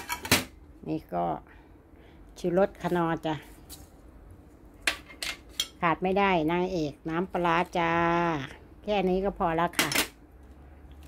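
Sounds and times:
kitchenware clinking: 0:00.0 - 0:00.5, 0:04.8 - 0:05.8.

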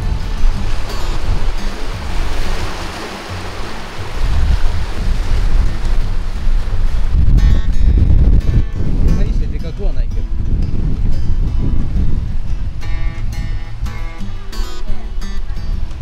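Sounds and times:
sea waves washing among boulders: 0:00.0 - 0:16.0
wind rumble on microphone: 0:00.0 - 0:16.0.

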